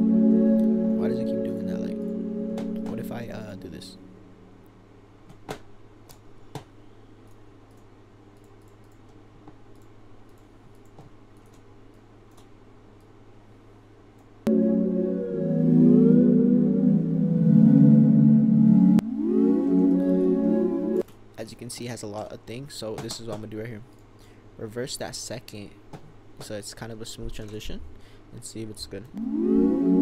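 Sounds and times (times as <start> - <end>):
synth pad holding chords: 0.0 - 4.7, 14.5 - 21.0, 29.1 - 30.0
low hum: 0.0 - 5.2, 14.5 - 21.0, 29.1 - 30.0
shimmering granular tones gliding: 14.5 - 21.0.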